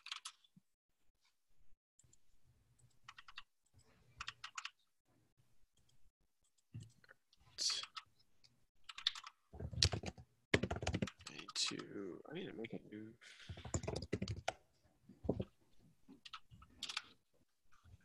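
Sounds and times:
computer keyboard typing: 0.0 - 0.4, 2.8 - 3.5, 4.2 - 4.8, 8.9 - 11.6, 13.5 - 14.6, 16.2 - 17.1.

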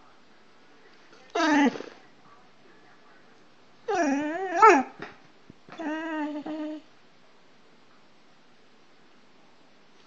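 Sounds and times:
dog howling: 3.9 - 5.0, 5.8 - 6.8.

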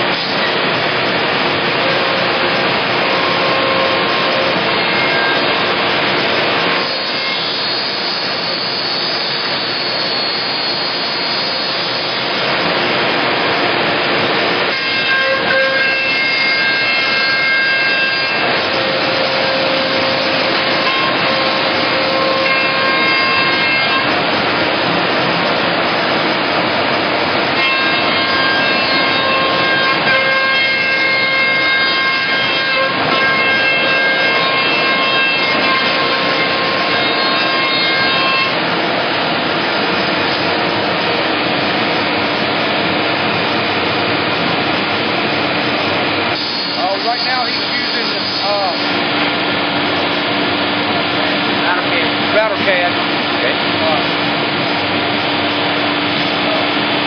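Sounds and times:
router spindle whining: 0.0 - 57.0.

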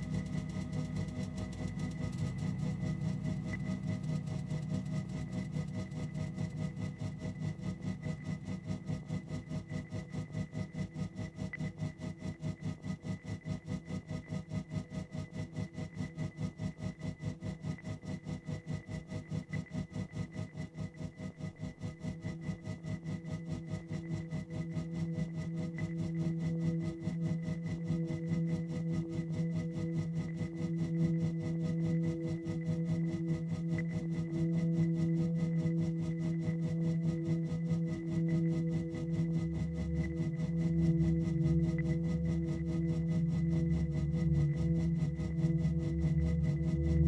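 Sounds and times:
pulsing low drone: 0.0 - 14.4, 18.0 - 47.0.

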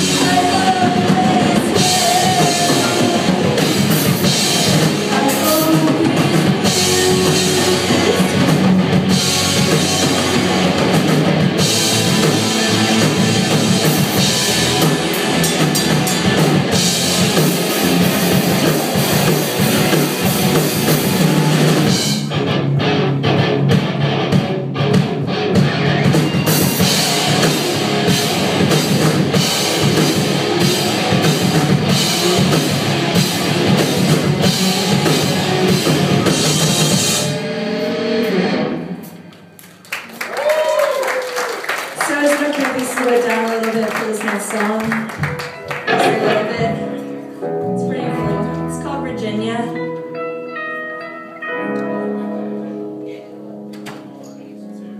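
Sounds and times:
bass guitar: 0.0 - 39.5, 45.0 - 54.9
distorted electric guitars: 0.0 - 39.6, 44.2 - 54.9
drum kit: 0.0 - 39.8, 42.0 - 50.1.

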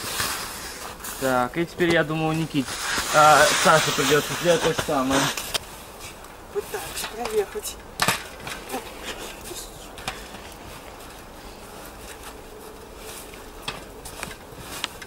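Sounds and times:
bicycle crunching through snow: 0.0 - 7.0, 8.5 - 15.0
steady hiss: 0.0 - 15.0.

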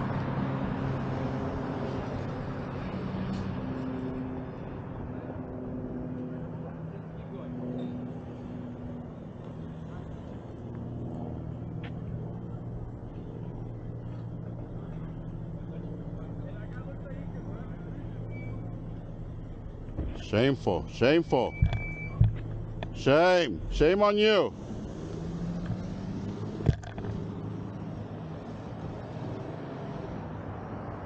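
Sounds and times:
car engine running slowly: 6.2 - 23.9.

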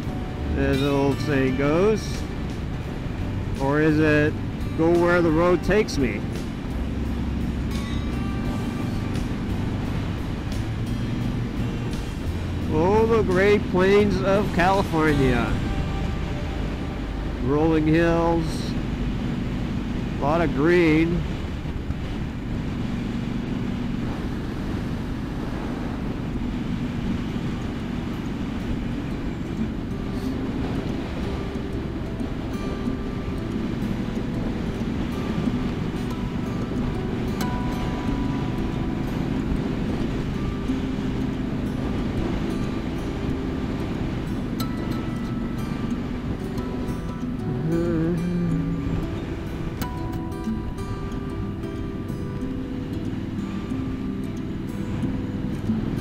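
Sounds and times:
motorcycle engine running: 0.0 - 17.7, 21.2 - 52.0
wind rush: 0.0 - 56.0.

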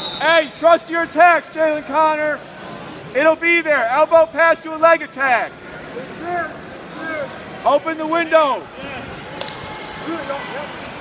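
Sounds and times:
big hall background noise: 0.0 - 11.0.

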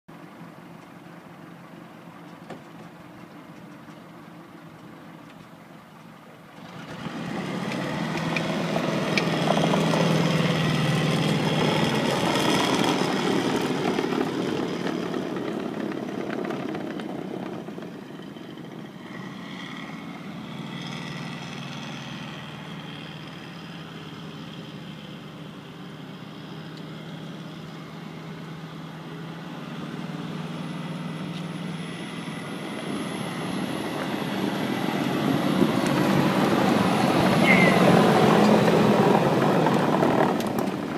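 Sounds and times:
tracked vehicle driving past: 6.5 - 40.9.

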